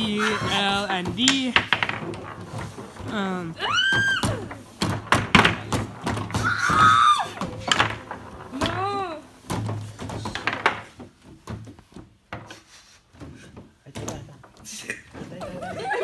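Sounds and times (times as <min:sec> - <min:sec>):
players squealing and exclaiming: 0:00.0 - 0:00.9, 0:03.6 - 0:04.6, 0:06.4 - 0:07.8
foosball ball and figures clacking: 0:00.0 - 0:16.0.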